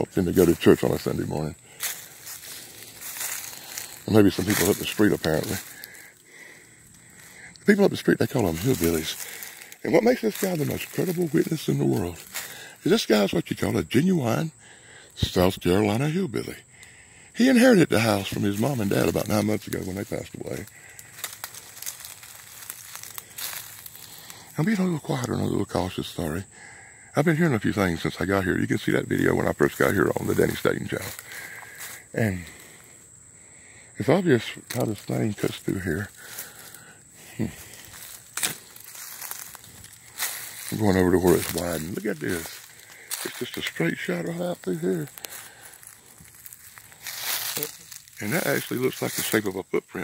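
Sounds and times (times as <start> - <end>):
footsteps through dry leaves: 0.3 - 12.7, 18.1 - 24.6, 29.5 - 32.7, 34.6 - 49.5.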